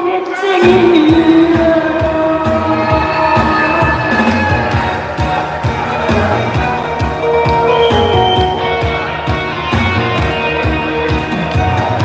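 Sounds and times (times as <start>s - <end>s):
woman singing: 0.0s - 5.4s
instrumental music with steady beat: 0.2s - 12.0s.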